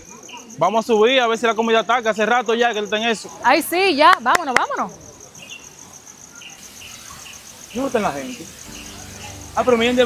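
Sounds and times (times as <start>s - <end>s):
insects trilling: 0.0s - 10.0s
short insect chirps: 0.0s - 10.0s.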